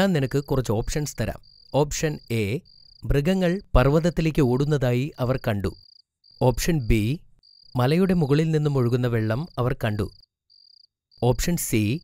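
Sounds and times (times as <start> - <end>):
man speaking: 0.0 - 5.8, 6.4 - 7.2, 7.8 - 10.2, 11.2 - 12.0
pulsing cricket-like chirp: 0.0 - 12.0.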